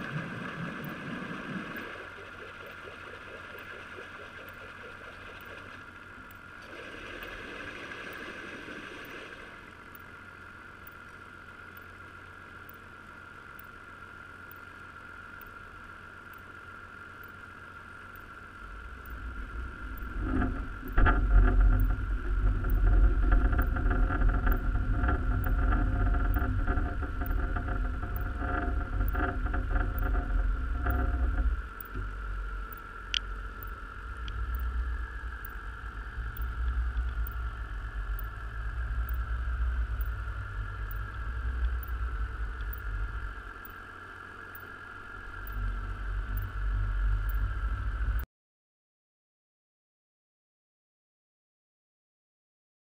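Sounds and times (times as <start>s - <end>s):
steady high whine: 0.0s - 48.3s
low underwater rumble: 18.7s - 48.2s.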